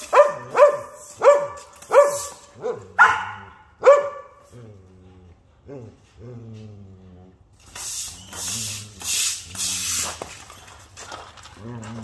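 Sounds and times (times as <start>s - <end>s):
broom bristles scraping wet concrete: 0.0s - 3.0s, 7.6s - 12.0s.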